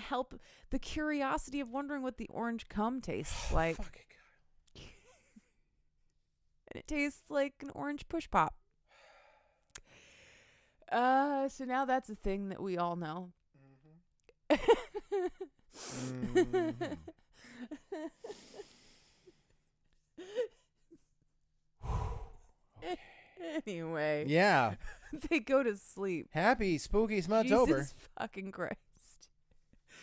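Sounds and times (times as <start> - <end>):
person sighing: 15.8 - 17.1, 21.8 - 23.4.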